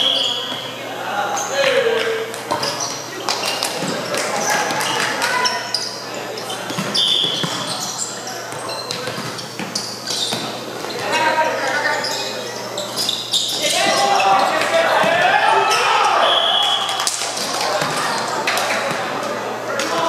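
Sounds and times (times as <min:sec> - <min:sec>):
voices talking and calling out: 0:00.0 - 0:20.0
volleyballs thumping: 0:06.6 - 0:07.8.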